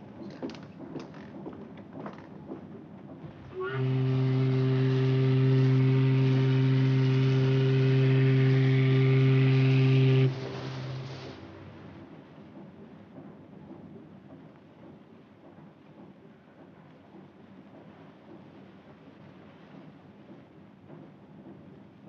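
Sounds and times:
ship's steam whistle blast: 0:03.5 - 0:11.7
hiss of steam: 0:05.6 - 0:12.0.

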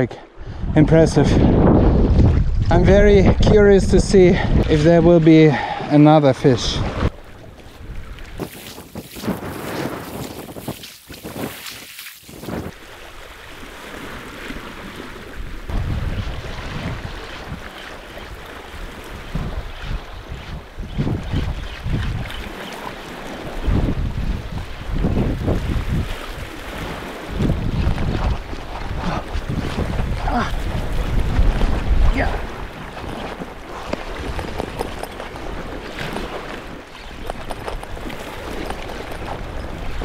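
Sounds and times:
wind buffeting microphone: 0:00.0 - 0:05.9, 0:06.7 - 0:40.0
sea waves: 0:04.2 - 0:40.0.

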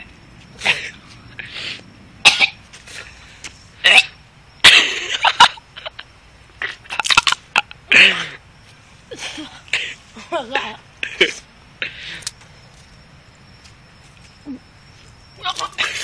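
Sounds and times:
boy coughing hard: 0:02.2 - 0:02.6.

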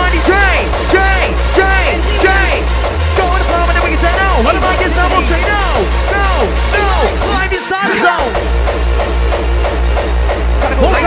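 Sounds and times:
mc's voice: 0:00.0 - 0:08.4, 0:10.6 - 0:11.0
hardcore dance music: 0:00.0 - 0:11.0
heavy pulsing bassline: 0:00.0 - 0:11.0.

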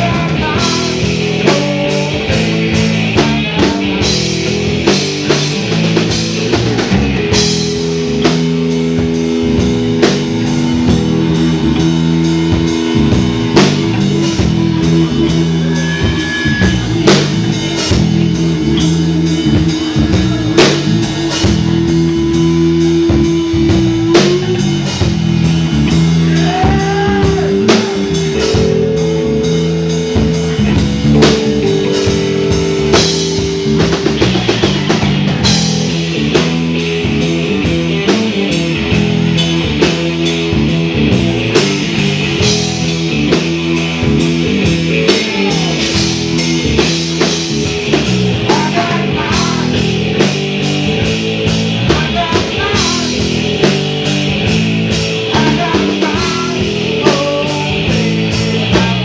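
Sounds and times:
bass guitar: 0:00.0 - 0:59.0
drum kit beat: 0:00.0 - 0:59.0
electric guitar long notes: 0:00.0 - 0:59.0.

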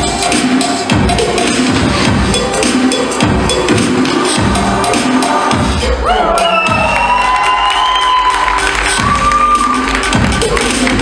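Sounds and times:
dance music with thumping beat: 0:00.0 - 0:11.0
audience cheering: 0:06.1 - 0:10.2.

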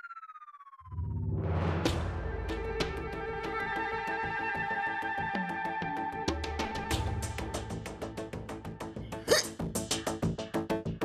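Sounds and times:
rhythmic staccato background music: 0:05.6 - 0:11.0
woman hiccuping loudly: 0:09.3 - 0:09.6.

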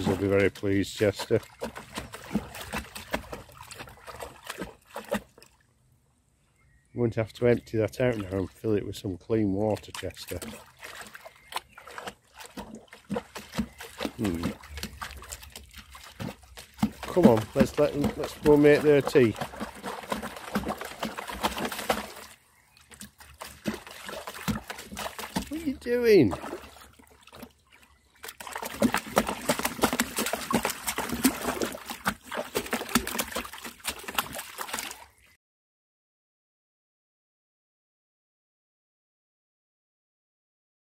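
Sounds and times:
dog lapping water: 0:00.0 - 0:05.6, 0:09.5 - 0:35.3.

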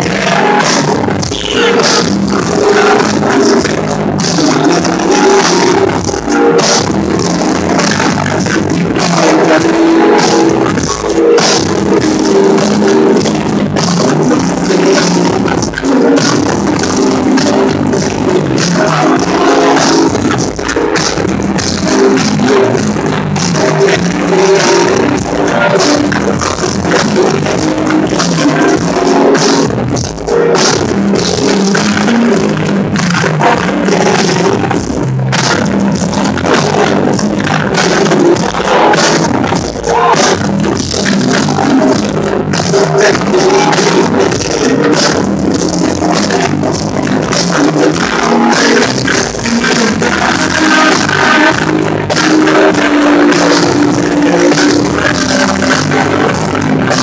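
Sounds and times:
loud hip-hop concert music: 0:00.0 - 0:57.0.

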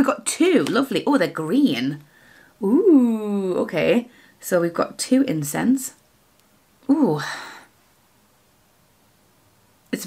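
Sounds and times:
woman speaking: 0:00.0 - 0:02.0, 0:02.6 - 0:06.0, 0:06.8 - 0:07.7.

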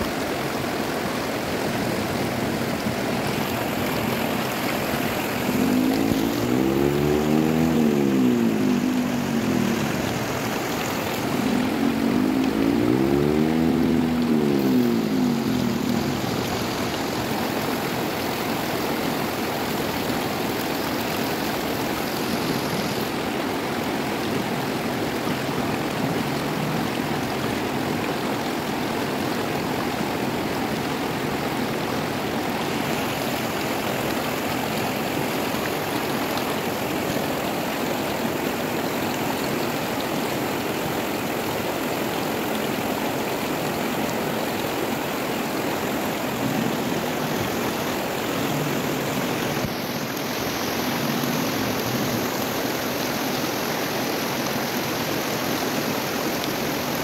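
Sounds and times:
river rapids rushing over rocks: 0:00.0 - 0:57.0
humming rising and falling in pitch: 0:05.4 - 0:16.9.

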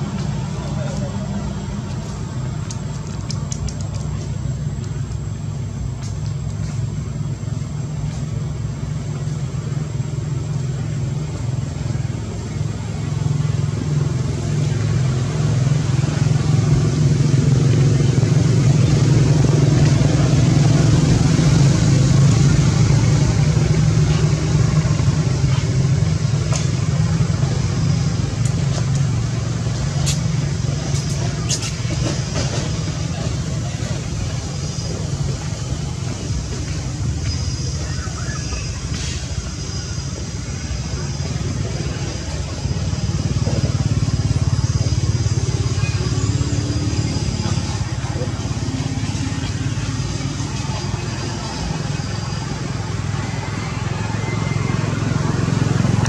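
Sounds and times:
vehicle engine rumble: 0:00.0 - 0:56.0.

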